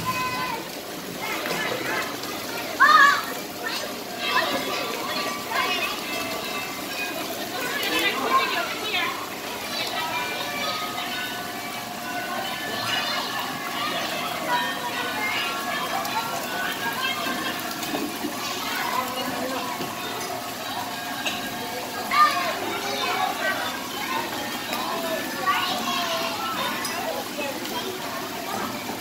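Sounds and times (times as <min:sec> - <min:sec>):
children calling and chattering: 0:00.0 - 0:29.0
water pouring and splashing: 0:00.0 - 0:29.0.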